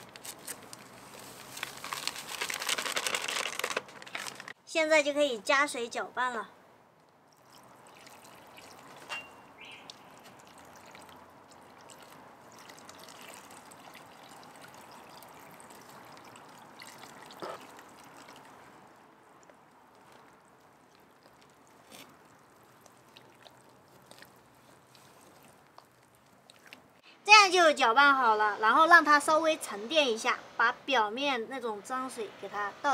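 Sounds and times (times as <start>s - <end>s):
water pouring into mud: 7.3s - 9.0s, 9.8s - 26.8s.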